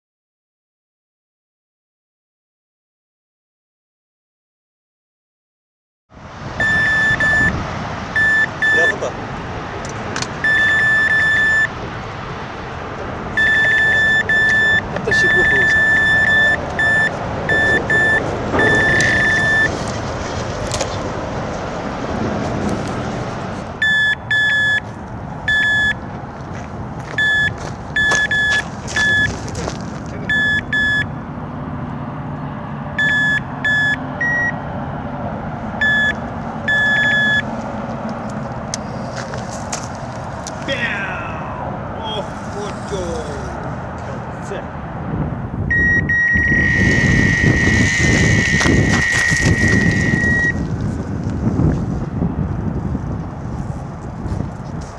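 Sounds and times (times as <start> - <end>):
bite alarm beeping: 6.6 - 7.6, 8.2 - 9.0, 10.4 - 11.8, 13.4 - 19.8, 23.8 - 24.9, 25.5 - 26.0, 27.2 - 29.3, 30.3 - 31.1, 33.0 - 34.6, 35.8 - 37.5, 45.7 - 50.6.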